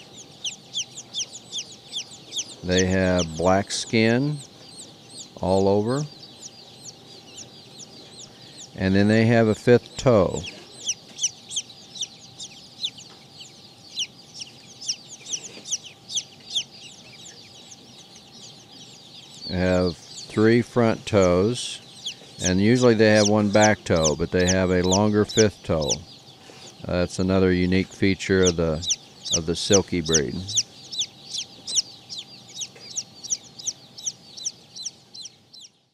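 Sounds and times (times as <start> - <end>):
baby chicks peeping: 0.0 - 35.9.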